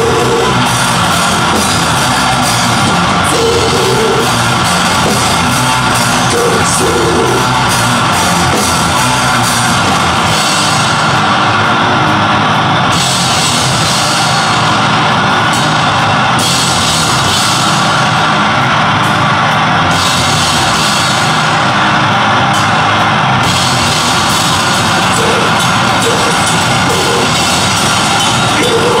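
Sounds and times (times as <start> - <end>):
heavy live band music: 0.0 - 29.0.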